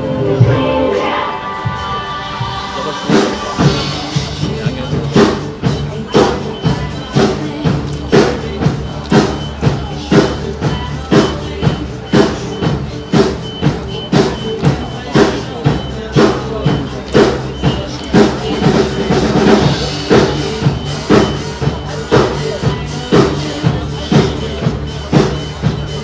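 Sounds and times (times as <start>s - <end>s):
backing track music: 0.0s - 26.0s
drum kit playing pop beat: 0.0s - 26.0s.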